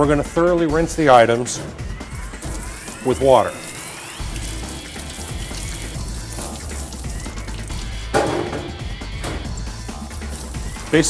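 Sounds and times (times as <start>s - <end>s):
background music: 0.0s - 11.0s
water spraying into steel sink: 1.0s - 11.0s.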